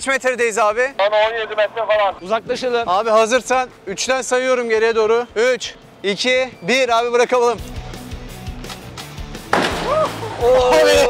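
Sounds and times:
background music: 0.0s - 11.0s
car crashing onto dirt: 9.5s - 10.1s
short rising shout: 9.8s - 11.0s.

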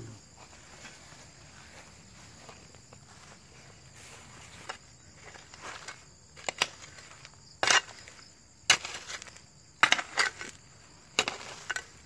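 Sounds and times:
soil and stones swept into hole: 0.6s - 12.0s.

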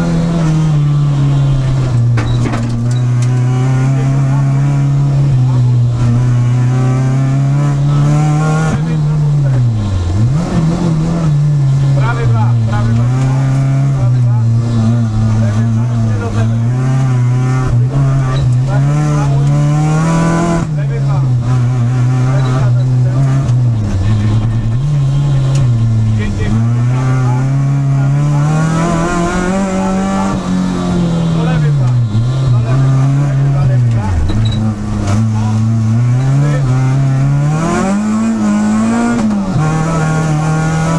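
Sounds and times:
rally car engine revving: 0.0s - 40.9s.

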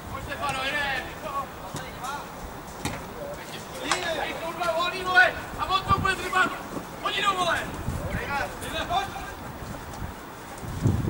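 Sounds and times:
players shouting calls: 0.0s - 9.8s.

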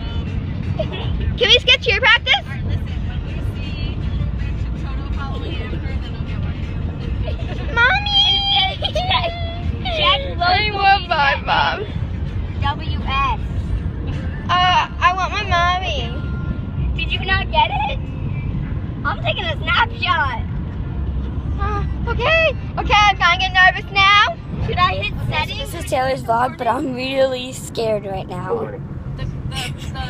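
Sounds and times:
car rumbling on road: 0.0s - 30.0s
girls talking: 7.6s - 11.8s, 21.6s - 30.0s.

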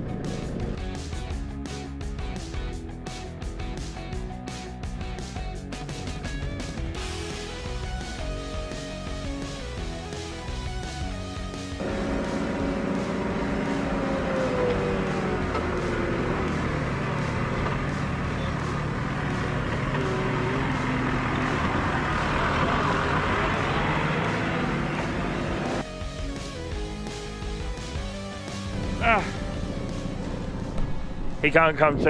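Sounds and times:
diesel engine running: 0.0s - 2.8s, 5.7s - 32.0s
background music: 0.0s - 32.0s.

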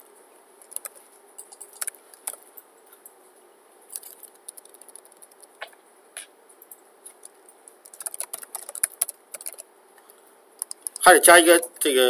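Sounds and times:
computer keyboard typing: 0.6s - 2.5s, 3.9s - 5.7s, 7.1s - 9.7s, 10.6s - 11.2s.

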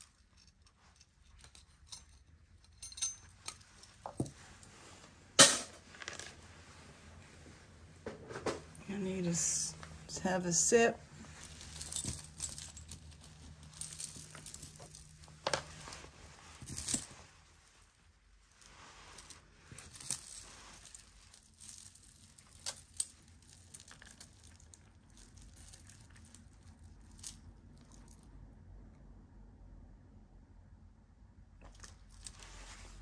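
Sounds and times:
jewelry chains clinking: 0.0s - 4.4s, 11.2s - 28.3s, 31.6s - 33.0s.

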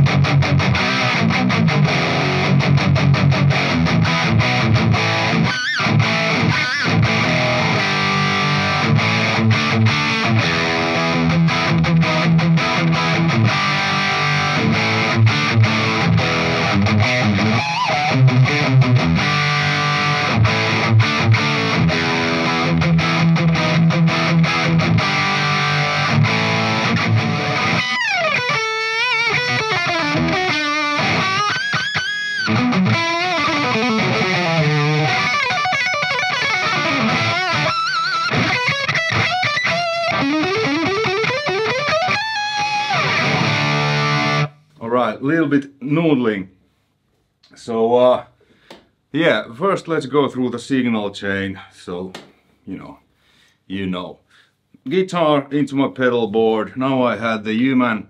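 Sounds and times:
distorted electric guitar: 0.0s - 45.0s.

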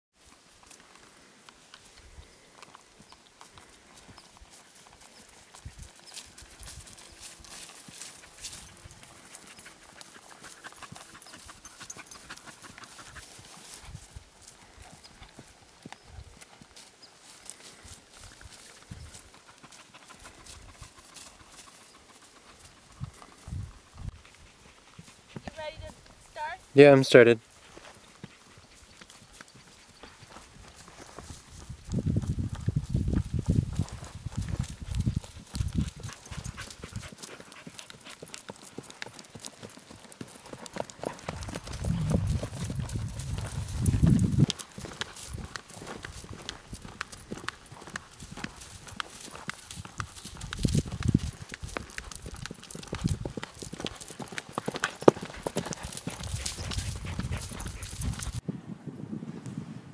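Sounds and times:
horse hoofbeats on grass: 0.1s - 58.4s.

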